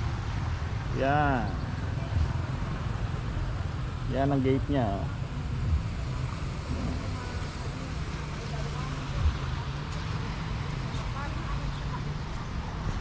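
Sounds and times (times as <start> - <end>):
faint distant voices: 0.4 - 13.0.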